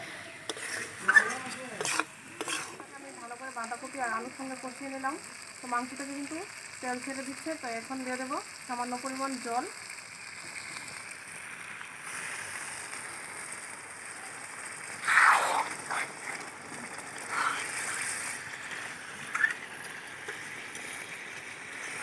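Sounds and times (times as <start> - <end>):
frying pan sizzling: 0.0 - 22.0
ladle scraping a pan: 0.4 - 2.9
water splashing into a pan: 0.5 - 22.0.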